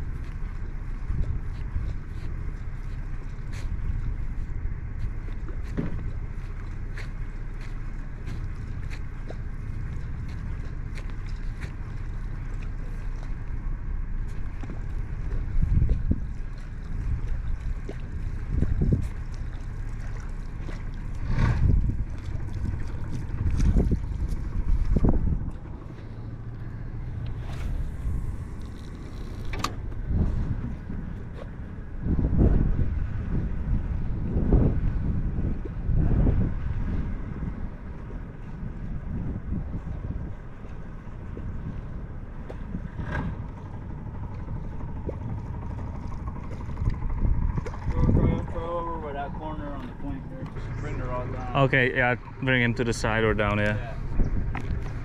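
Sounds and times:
water lapping at boat hull: 0.0s - 55.0s
wind buffeting microphone: 0.0s - 55.0s.

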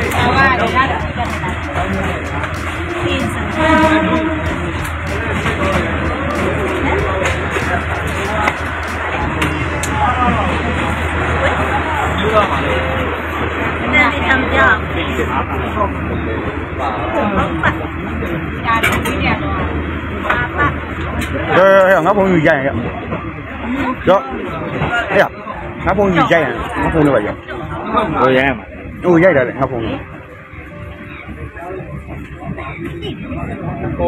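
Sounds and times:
person speaking: 0.0s - 10.6s
voices talking: 0.0s - 13.3s
train carriage rumbling: 0.0s - 34.0s.

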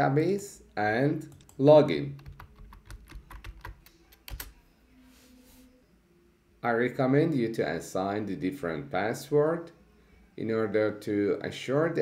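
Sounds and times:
keyboard typing: 1.3s - 4.6s.

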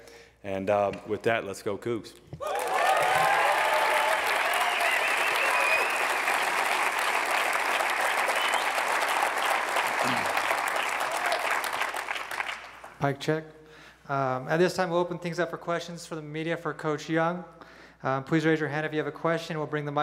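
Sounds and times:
whoops and shouts: 2.4s - 6.2s, 11.0s - 11.6s
audience applauding: 2.4s - 13.0s.

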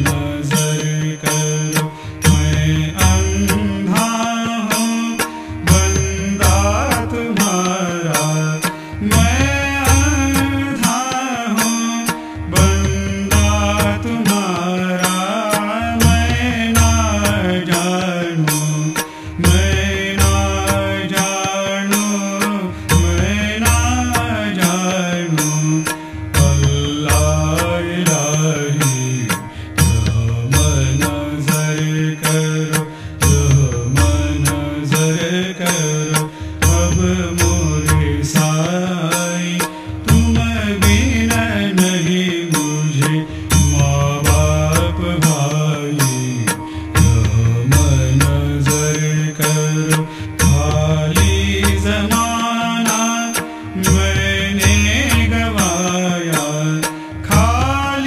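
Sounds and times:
person chanting a devotional song: 0.0s - 58.0s
sharp percussion strikes: 0.0s - 58.0s.

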